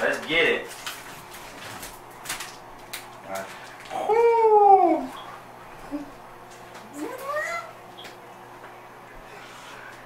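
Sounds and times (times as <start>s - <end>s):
plastic wrapper crinkling: 0.0s - 4.0s.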